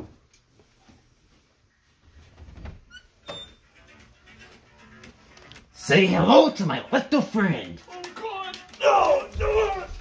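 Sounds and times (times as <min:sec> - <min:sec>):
door squeak: 0:02.6 - 0:03.7.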